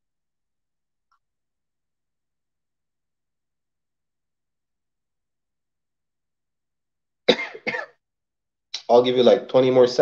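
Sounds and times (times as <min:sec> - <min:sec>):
man coughing: 0:07.2 - 0:08.0.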